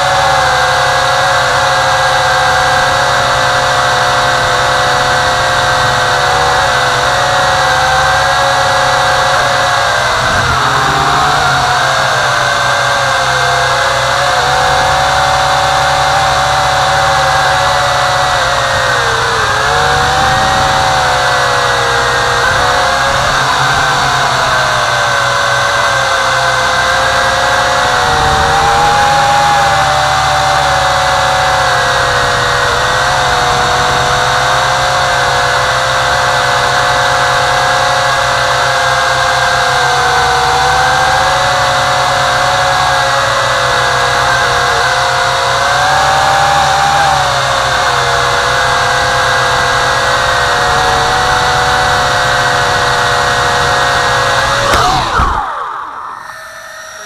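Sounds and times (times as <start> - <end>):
quadcopter propellers whining: 0.0 - 57.0.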